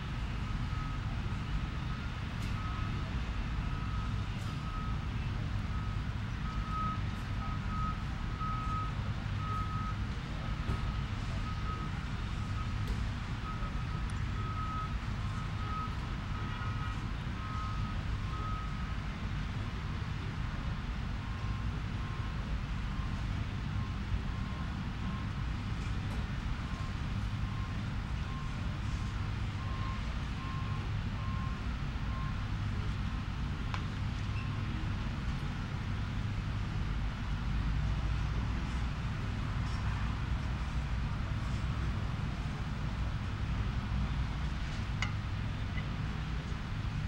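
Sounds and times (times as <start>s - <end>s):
reversing alarm beeping: 0.4s - 12.8s, 13.4s - 18.9s.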